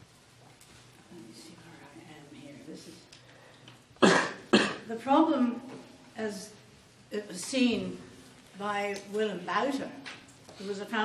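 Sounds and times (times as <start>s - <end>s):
person coughing: 4.0s - 4.9s.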